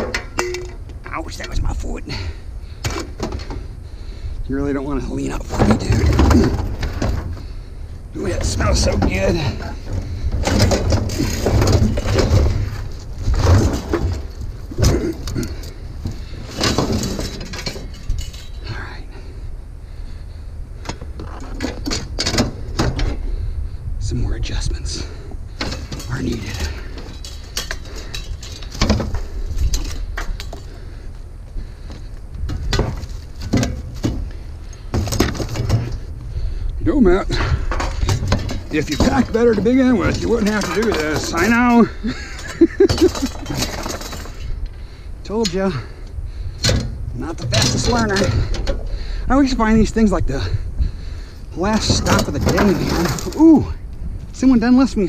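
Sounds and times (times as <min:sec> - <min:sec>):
metal grill knocking and scraping: 0:00.0 - 0:00.8.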